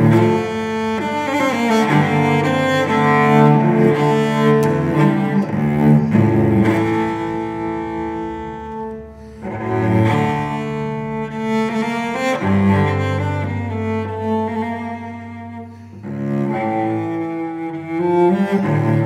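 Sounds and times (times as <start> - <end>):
bowed cello: 0.0 - 19.0.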